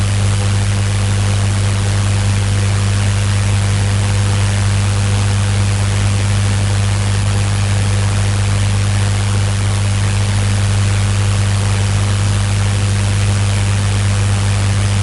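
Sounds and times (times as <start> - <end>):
steady electrical hum: 0.0 - 15.0.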